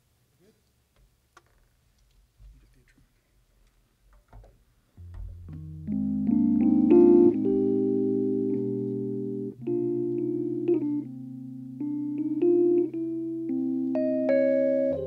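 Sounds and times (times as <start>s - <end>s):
electric piano jazz chords: 5.0s - 15.0s
low bass notes: 5.0s - 15.0s.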